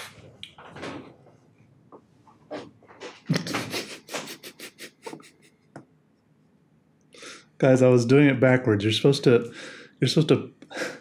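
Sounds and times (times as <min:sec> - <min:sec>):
man laughing: 0:03.2 - 0:05.7.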